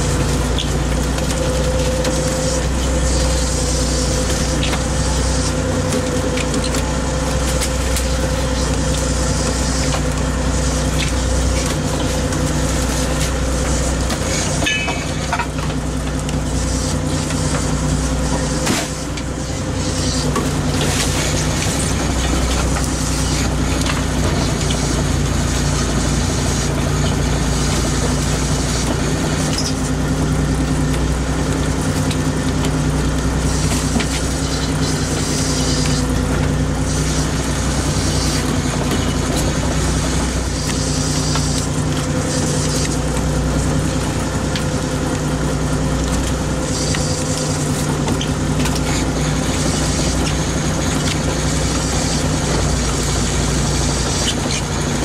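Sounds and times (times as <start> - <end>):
boat engine and net hauler drone: 0.0 - 55.0.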